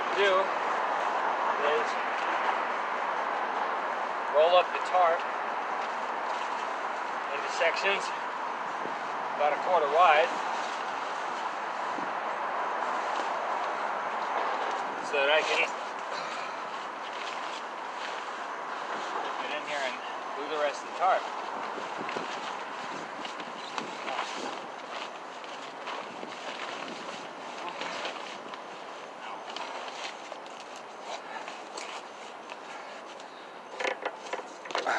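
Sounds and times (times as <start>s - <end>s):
steady background hiss: 0.0s - 23.4s
steady rushing noise: 0.0s - 33.1s
plastic tarp rustling: 20.9s - 32.3s.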